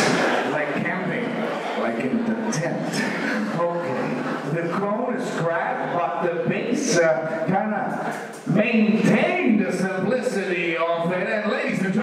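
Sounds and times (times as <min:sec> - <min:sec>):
indistinct talking in echoing hall: 0:00.0 - 0:12.0.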